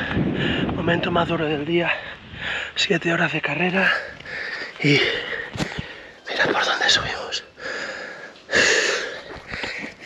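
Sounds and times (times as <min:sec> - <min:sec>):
person breathing heavily: 0:00.0 - 0:00.8, 0:02.0 - 0:02.8, 0:03.8 - 0:06.2, 0:07.4 - 0:10.0.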